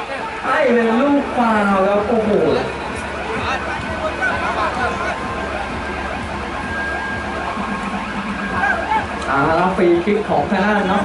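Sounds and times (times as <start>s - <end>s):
people calling out and chattering: 0.0s - 11.0s.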